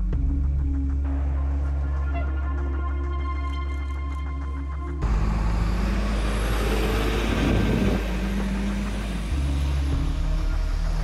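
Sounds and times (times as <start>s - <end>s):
background music: 0.0s - 11.0s
traffic rumble: 5.0s - 11.0s.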